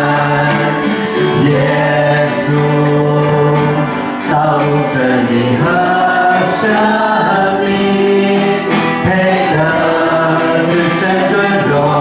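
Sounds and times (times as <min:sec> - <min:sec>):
electric keyboard accompaniment: 0:00.0 - 0:12.0
steady beat: 0:00.0 - 0:12.0
voices singing together: 0:00.0 - 0:12.0.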